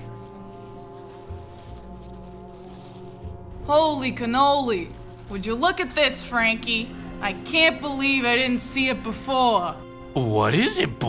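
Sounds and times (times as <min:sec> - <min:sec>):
sustained music chord with low bass: 0:00.0 - 0:11.0.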